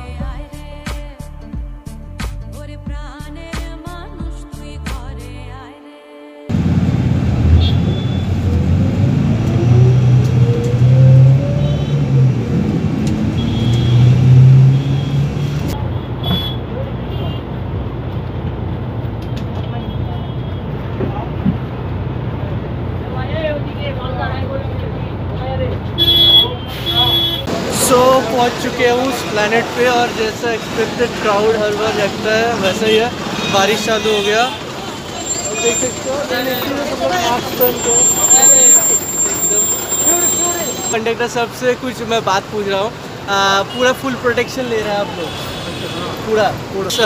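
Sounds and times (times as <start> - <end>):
bus engine accelerating: 6.5 - 16.0, 26.6 - 43.3
road noise: 6.5 - 47.0
short high beeps: 7.6 - 8.3, 37.6 - 41.0.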